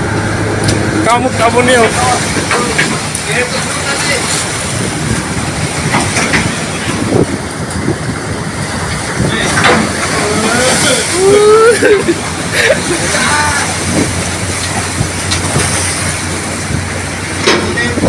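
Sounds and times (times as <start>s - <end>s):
big wave breaking over bow: 0.0s - 18.0s
storm wind: 0.0s - 18.0s
waves breaking against hull: 0.0s - 18.0s.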